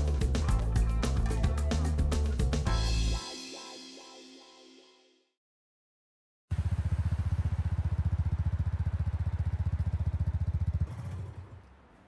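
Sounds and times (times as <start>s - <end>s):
motorcycle engine running: 0.0s - 3.1s, 6.5s - 11.8s.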